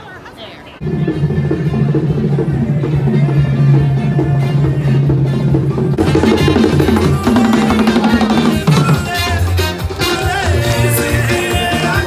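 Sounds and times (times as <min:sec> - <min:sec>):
drums and percussion: 0:00.8 - 0:12.0
live band playing upbeat music: 0:00.8 - 0:12.0.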